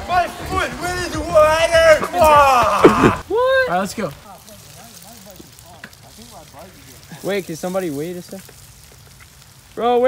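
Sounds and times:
bicycle tyres on muddy trail: 0.0s - 10.0s.

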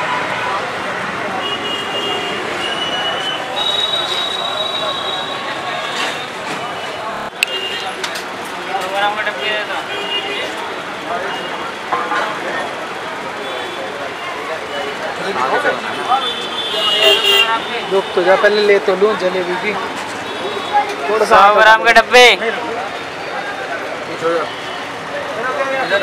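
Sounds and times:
crowd voices: 0.0s - 26.0s
passing traffic: 0.0s - 26.0s
people talking: 0.0s - 26.0s
vehicle horn toot: 1.4s - 6.1s, 16.1s - 18.1s.

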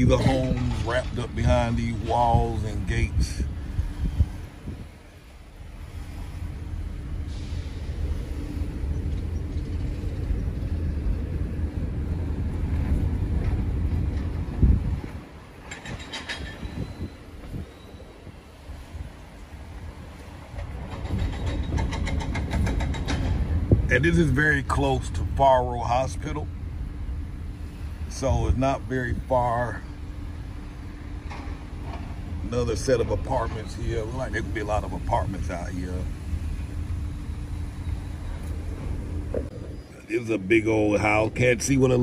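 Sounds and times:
car road and engine rumble: 0.0s - 42.0s.

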